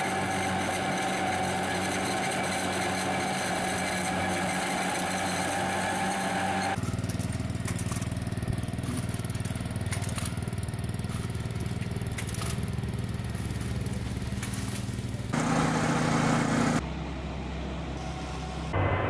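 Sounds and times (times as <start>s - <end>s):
small engine puttering: 0.0s - 16.8s
harvesting machine whining hum: 0.0s - 19.0s.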